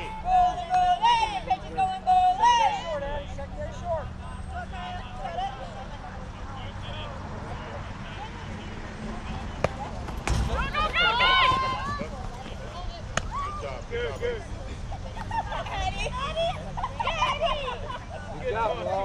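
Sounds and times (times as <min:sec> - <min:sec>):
crowd of spectators talking: 0:00.0 - 0:19.0.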